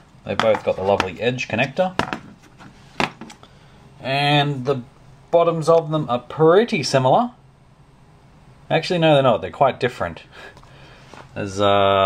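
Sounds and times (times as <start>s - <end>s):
floppy drive knocking on table: 2.0s - 2.3s.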